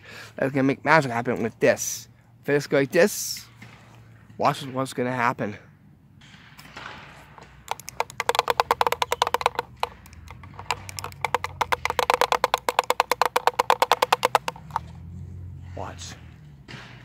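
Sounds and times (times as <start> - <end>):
hand drum shaken rapid taps: 7.7 - 14.8.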